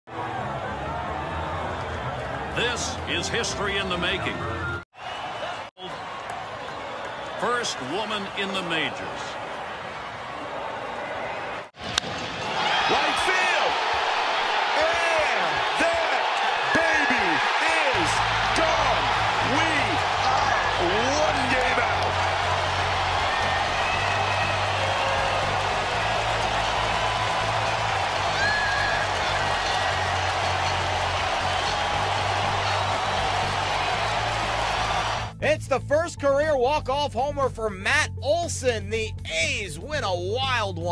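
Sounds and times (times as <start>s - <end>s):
stadium crowd cheering: 0.1s - 35.4s
whistles: 23.8s - 24.8s.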